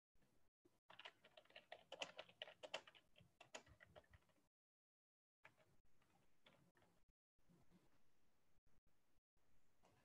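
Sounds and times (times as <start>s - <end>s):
typing on computer keyboard: 0.9s - 4.4s.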